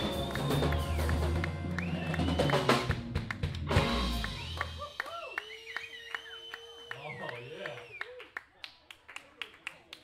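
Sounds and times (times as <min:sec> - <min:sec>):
whistle-like tones: 0:00.0 - 0:02.8, 0:04.1 - 0:08.1.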